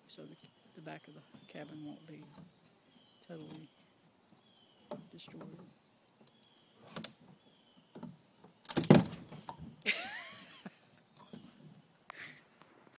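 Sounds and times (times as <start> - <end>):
crickets chirping: 0.0 - 12.9.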